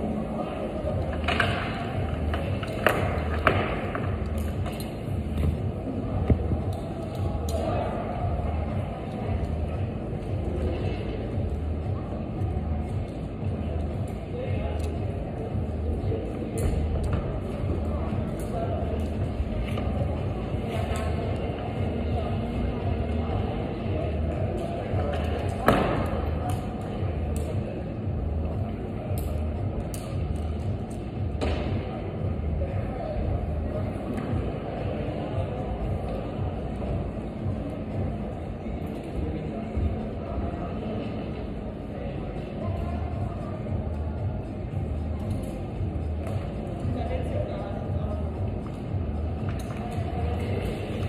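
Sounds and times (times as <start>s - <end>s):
low rumble of indoor hall: 0.0s - 51.0s.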